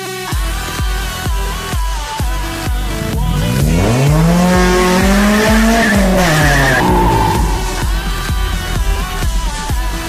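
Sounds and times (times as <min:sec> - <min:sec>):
car engine revving: 0:01.0 - 0:10.0
tyres squealing: 0:02.5 - 0:08.5.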